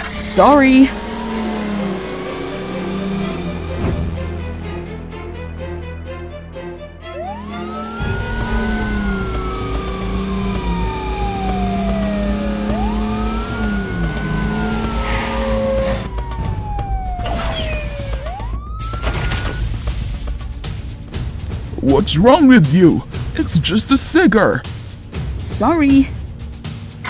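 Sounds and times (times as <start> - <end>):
fire truck siren wailing: 0.0 - 5.1, 7.0 - 19.7.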